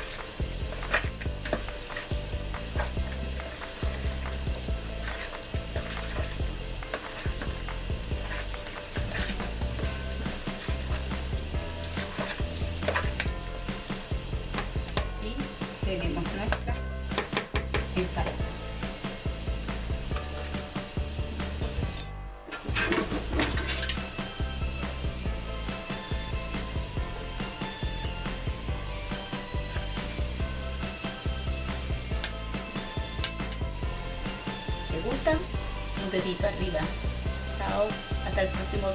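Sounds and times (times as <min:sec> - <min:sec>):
background music: 0:00.0 - 0:38.9.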